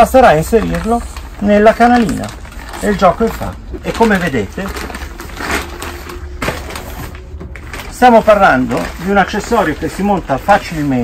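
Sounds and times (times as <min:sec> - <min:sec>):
fabric and plastic scraping: 0:00.0 - 0:11.0.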